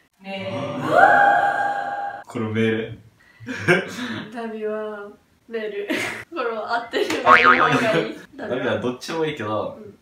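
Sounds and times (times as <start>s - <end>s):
voice sliding up and down in pitch: 7.3s - 8.0s.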